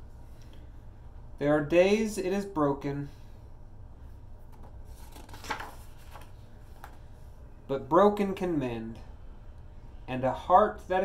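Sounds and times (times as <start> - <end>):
low steady hum: 0.0 - 11.0
book page turning: 4.5 - 7.0.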